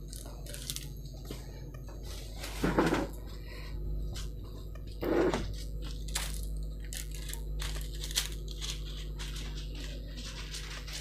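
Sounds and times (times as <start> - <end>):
metallic foil paper crinkling: 0.0 - 1.0, 5.5 - 11.0.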